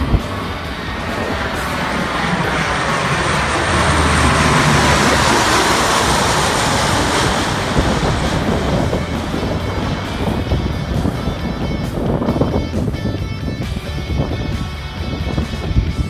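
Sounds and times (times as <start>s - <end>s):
propeller plane roaring overhead: 0.0s - 16.0s.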